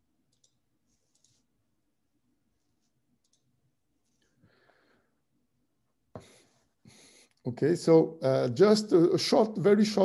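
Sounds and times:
computer mouse clicks: 0.3 - 1.4, 3.2 - 3.5.

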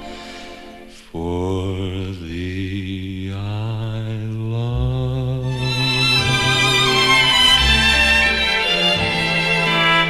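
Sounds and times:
orchestral music: 0.0 - 1.0, 5.4 - 10.0.

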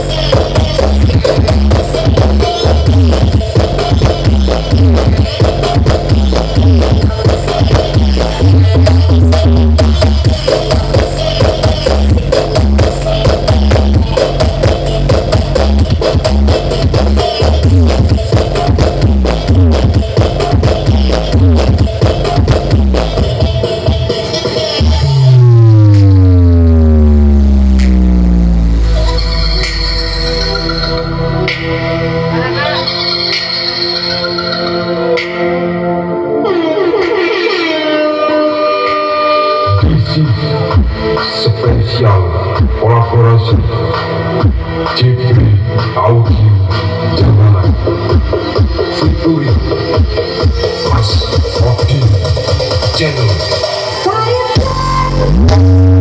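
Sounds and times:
loud electronic dance music: 0.0 - 56.0
deep bass note sliding down: 24.8 - 31.9, 55.1 - 56.0.

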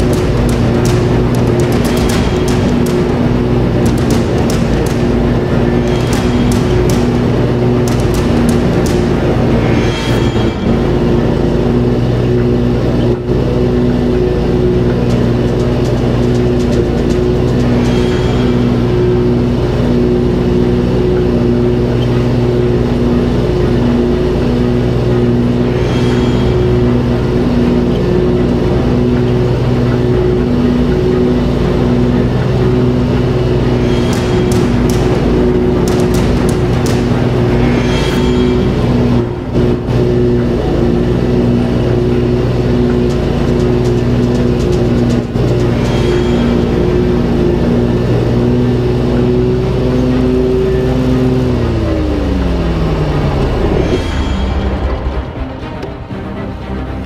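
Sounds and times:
riding mower engine under load: 0.0 - 53.8
music playing: 0.0 - 57.0.

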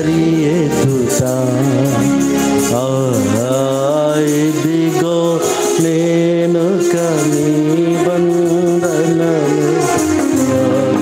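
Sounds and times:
music: 0.0 - 11.0
person singing long notes: 0.0 - 11.0.

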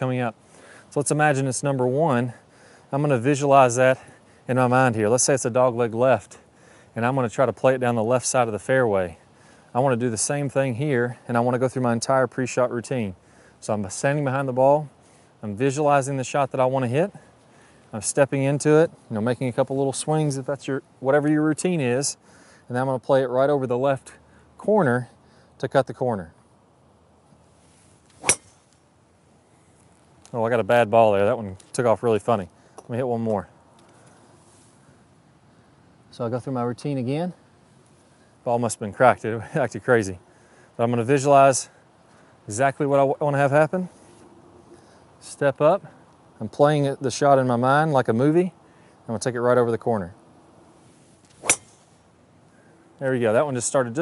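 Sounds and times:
golf club striking ball: 28.1 - 28.8, 51.3 - 52.0.

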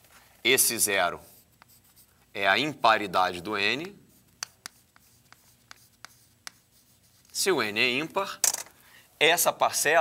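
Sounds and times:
chalk scratching on chalkboard: 1.2 - 2.2, 3.4 - 7.5
chalk ticking on board: 3.6 - 7.4.

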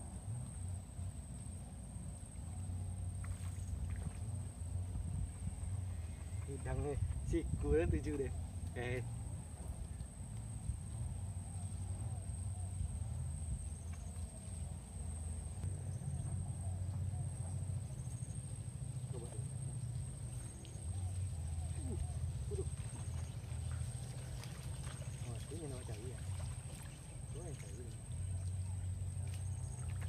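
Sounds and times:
steady low rumble: 0.0 - 30.0.

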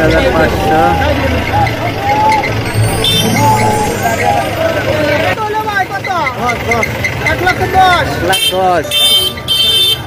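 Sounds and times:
men calling out: 0.0 - 9.0
vehicle engine rumbling: 0.0 - 10.0.

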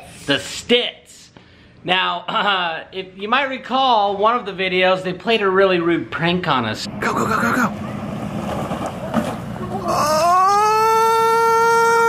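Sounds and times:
person yelling: 9.8 - 12.0.

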